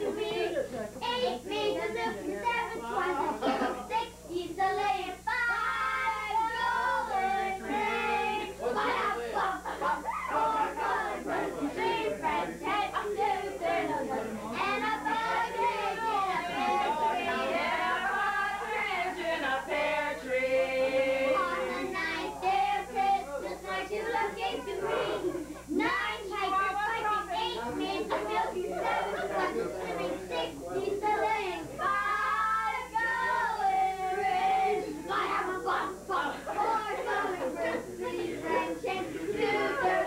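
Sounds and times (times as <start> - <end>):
group of voices singing: 0.0 - 40.0.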